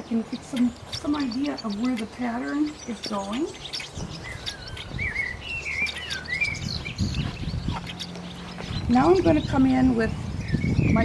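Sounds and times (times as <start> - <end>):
songbird warbling and chirping: 0.0 - 11.0.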